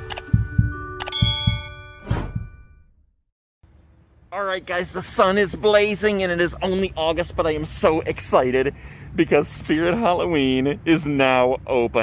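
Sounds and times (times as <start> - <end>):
low thuds: 0.2 - 2.9
bright bell ding: 1.0 - 2.8.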